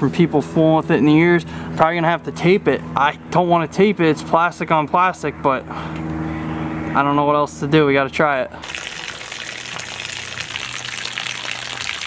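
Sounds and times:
water pouring into puddle: 8.6s - 12.0s.

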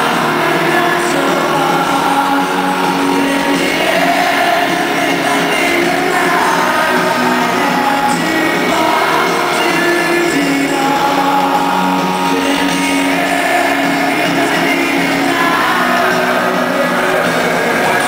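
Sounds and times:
live rock band playing: 0.0s - 18.0s
vocalist singing: 0.0s - 18.0s.

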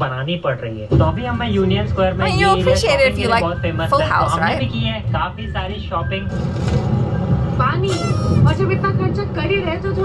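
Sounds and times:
person speaking: 2.2s - 4.7s.

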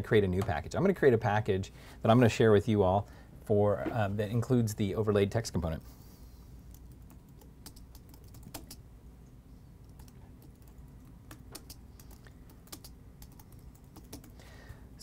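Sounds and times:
typing on a keyboard: 6.7s - 8.8s, 9.9s - 14.4s.

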